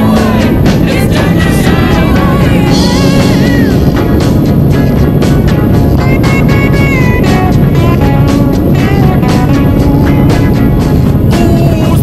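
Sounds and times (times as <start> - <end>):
background music with beat and melody: 0.0 - 12.0.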